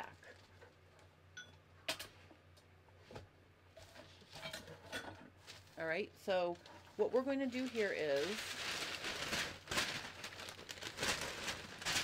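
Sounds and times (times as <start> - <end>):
paper rustling and crinkling: 7.1 - 12.0.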